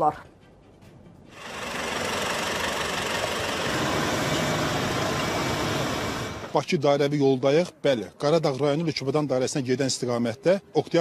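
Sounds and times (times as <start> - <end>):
vehicles idling in traffic: 1.3 - 6.6.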